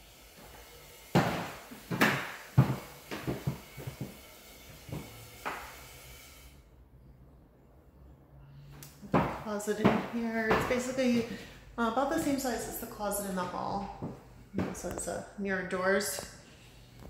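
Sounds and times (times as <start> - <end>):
footsteps on hardwood floor: 1.2 - 4.2, 4.8 - 5.6, 9.0 - 11.4, 12.0 - 15.2.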